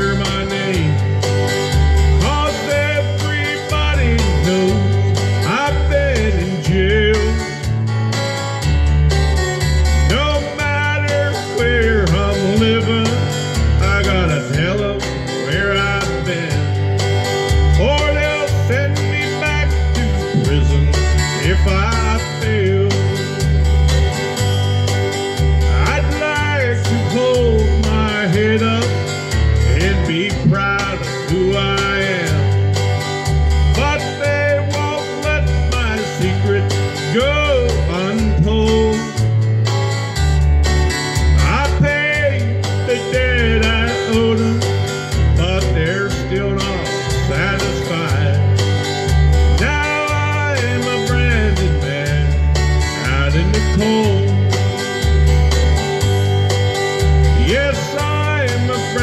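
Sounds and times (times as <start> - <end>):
country backing track: 0.0 - 59.0
harmonica with bending notes: 0.0 - 59.0.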